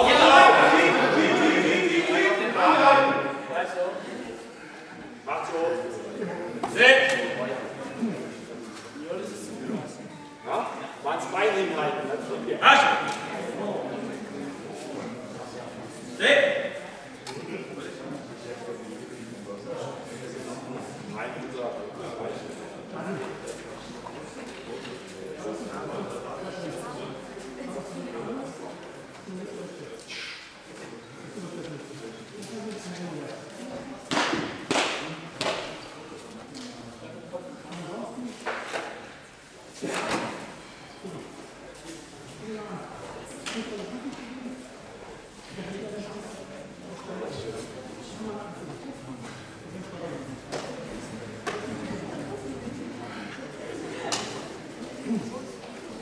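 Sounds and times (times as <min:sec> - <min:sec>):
man shouting: 0:00.0 - 0:03.4
low background chatter: 0:00.0 - 0:56.0
murmur of voices: 0:00.0 - 0:56.0.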